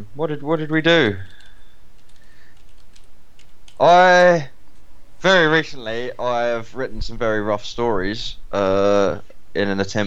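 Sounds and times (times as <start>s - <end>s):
computer keyboard typing: 1.3s - 3.8s.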